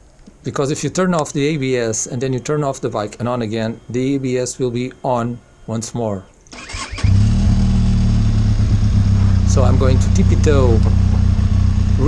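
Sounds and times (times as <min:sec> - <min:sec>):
motorcycle engine starting and idling: 0:06.5 - 0:12.0.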